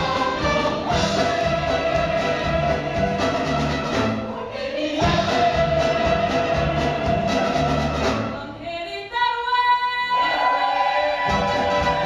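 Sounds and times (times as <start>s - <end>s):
mixed chorus singing a chord: 0.0s - 8.4s, 10.1s - 12.0s.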